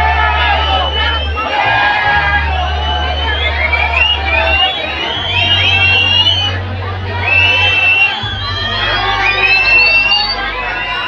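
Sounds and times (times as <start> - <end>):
people shouting and whooping: 0.0 - 11.0.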